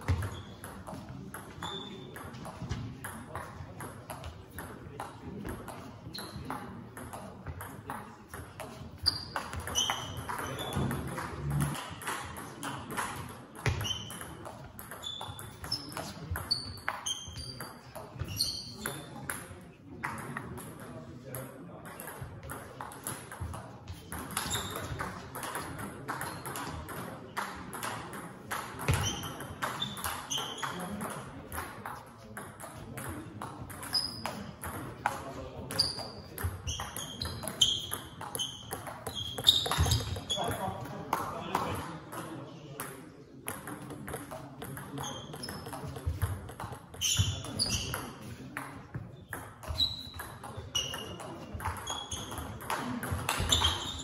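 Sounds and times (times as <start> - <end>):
short high squeaks: 9.0 - 10.7, 18.3 - 18.8, 53.3 - 54.0
ping pong ball clicking: 43.5 - 46.9, 49.3 - 53.8.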